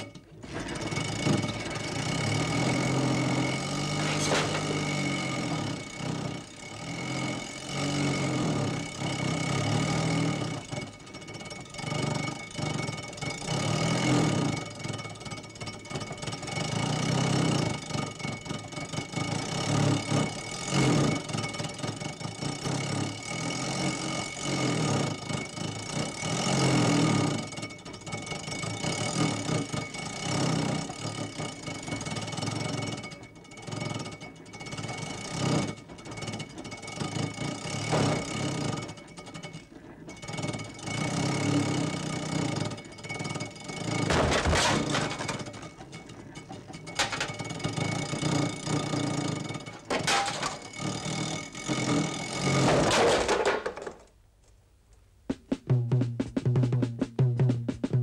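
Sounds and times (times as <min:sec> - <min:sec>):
small car engine running: 0:00.0 - 0:54.1
background music: 0:55.3 - 0:58.0.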